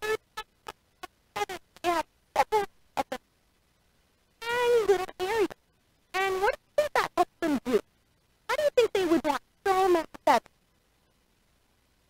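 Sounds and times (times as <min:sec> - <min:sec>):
woman's voice in fragments: 0:01.4 - 0:03.3, 0:04.4 - 0:07.9, 0:08.5 - 0:10.6.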